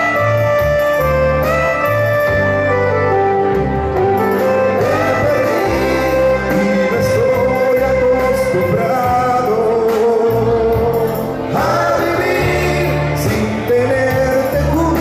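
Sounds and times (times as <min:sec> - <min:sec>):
backing track: 0:00.0 - 0:15.0
man singing into microphone: 0:04.8 - 0:15.0.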